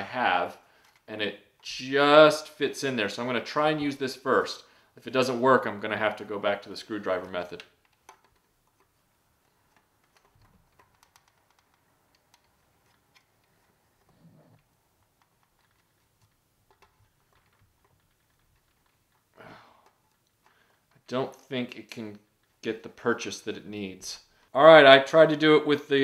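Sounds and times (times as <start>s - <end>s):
plastic tool clicks and scraping: 0.8s - 1.7s, 7.5s - 22.6s.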